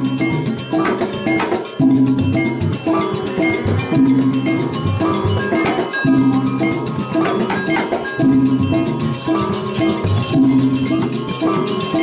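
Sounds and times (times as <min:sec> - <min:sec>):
drums: 0:00.0 - 0:12.0
struck metallophones ringing: 0:00.0 - 0:12.0.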